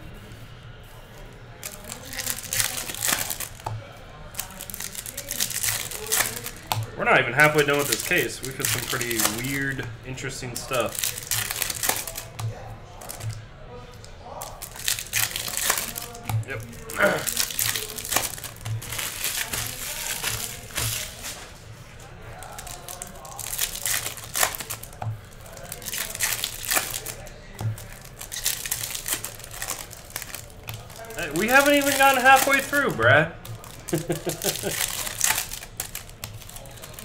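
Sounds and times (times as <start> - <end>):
foil wrappers crinkling and tearing: 0.8 - 37.0
cards being handled: 1.6 - 13.4, 14.4 - 21.7, 22.4 - 37.0.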